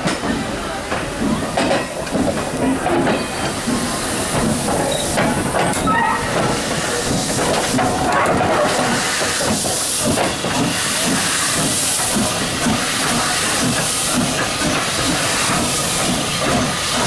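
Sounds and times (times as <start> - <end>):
people talking: 0.0 - 7.2
steam hissing: 0.4 - 17.0.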